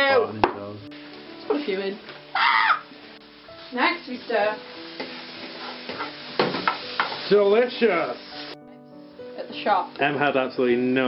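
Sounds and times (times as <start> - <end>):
food sizzling in a frying pan: 0.0 - 11.0
utensil knocking against pan: 5.9 - 7.2.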